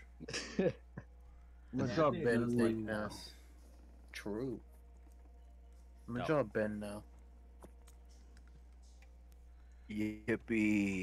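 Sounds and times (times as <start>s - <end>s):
low electrical hum: 0.0s - 11.0s
person speaking: 1.8s - 3.3s, 6.1s - 7.0s, 9.9s - 11.0s.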